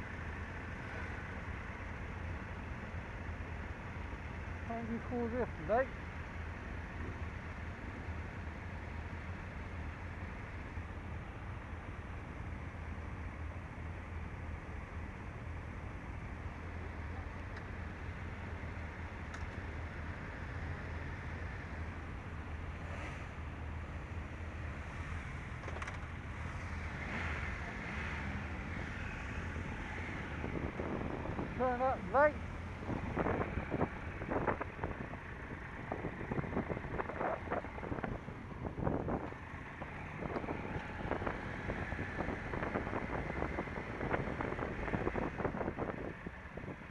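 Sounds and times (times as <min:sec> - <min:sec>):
motorcycle engines idling: 0:00.0 - 0:46.9.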